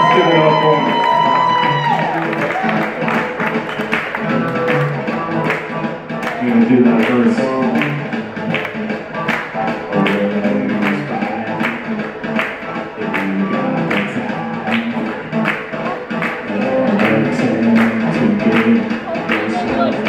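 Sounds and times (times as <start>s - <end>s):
bass guitar: 0.0s - 20.0s
drum beat: 0.0s - 20.0s
electric guitar: 0.0s - 20.0s
keyboards: 0.0s - 20.0s.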